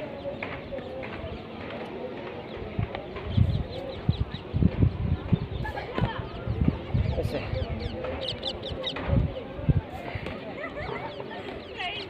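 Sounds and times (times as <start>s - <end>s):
small birds chirping: 0.0s - 9.6s, 10.9s - 12.0s
wind rumbling on microphone: 2.4s - 10.9s.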